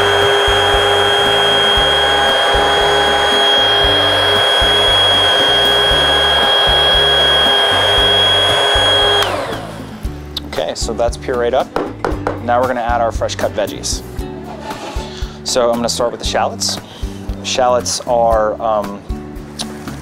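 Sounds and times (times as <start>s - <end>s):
stick blender motor whine: 0.0s - 10.1s.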